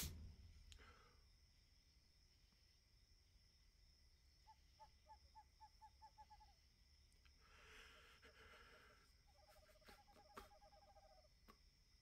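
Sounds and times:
owl hooting faintly: 4.4 - 6.6, 7.4 - 11.4.

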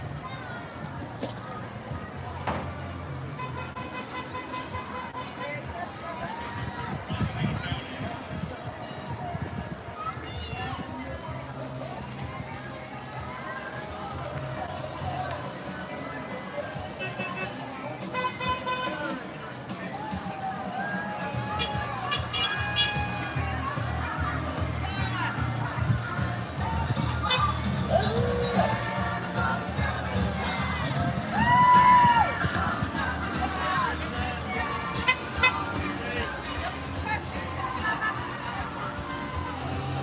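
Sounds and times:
voices: 0.0 - 40.0
golf cart horn honking: 3.4 - 5.7, 17.0 - 19.1, 21.6 - 23.0, 35.0 - 35.8
music: 6.3 - 40.0.

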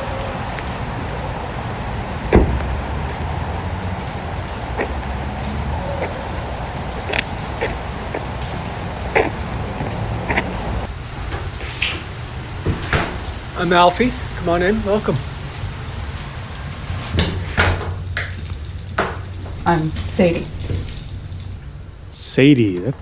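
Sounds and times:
rain: 0.0 - 23.0
car door shutting: 2.2 - 2.9.

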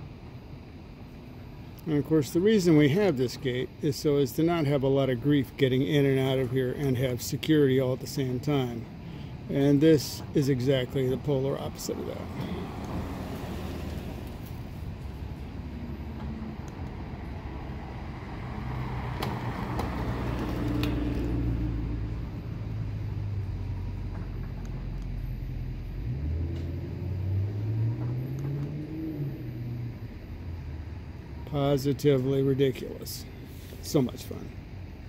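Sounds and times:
car engine pulling away: 11.9 - 31.2.

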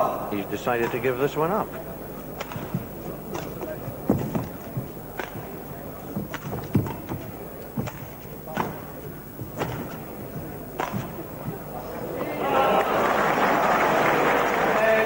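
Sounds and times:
murmur of crowd: 0.0 - 15.0
shuttlecock struck with rackets: 2.4 - 12.3.

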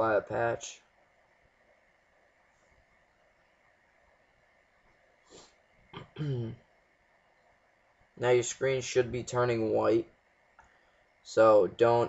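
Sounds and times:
faint room hiss: 0.0 - 12.0
person clearing throat: 6.0 - 6.6.

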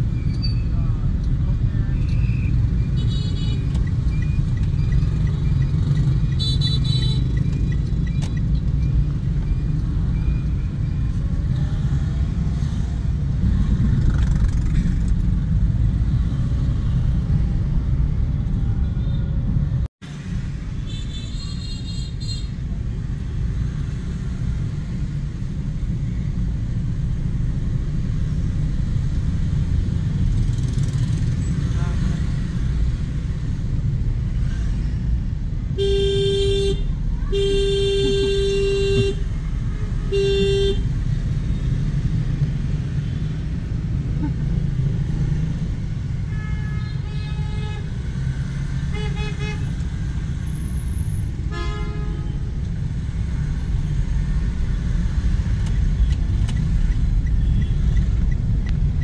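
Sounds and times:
road and engine rumble in car: 0.0 - 59.0
car horn honking: 35.8 - 39.3, 40.0 - 40.9, 51.5 - 52.4.

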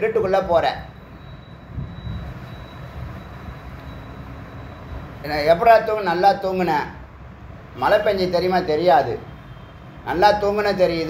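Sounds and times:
faint high whine: 0.2 - 6.5.

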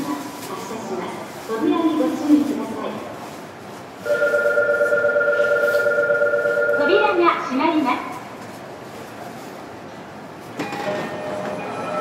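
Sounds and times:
electronic departure bell ringing: 4.1 - 7.0.

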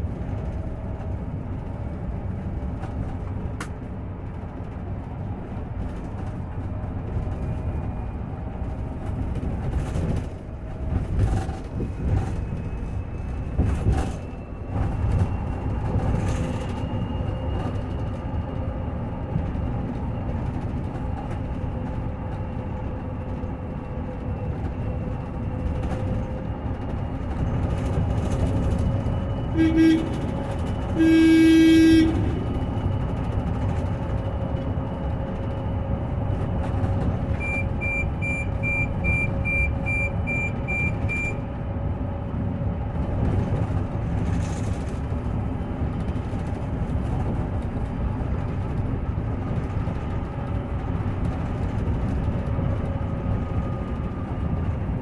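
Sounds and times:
road and tyre noise: 0.0 - 55.0
bus horn: 29.5 - 32.9
short high beeps: 37.4 - 41.4.

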